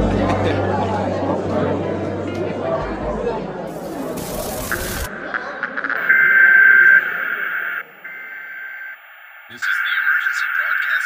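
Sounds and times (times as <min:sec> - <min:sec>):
electronic test tone: 0:04.4 - 0:11.0.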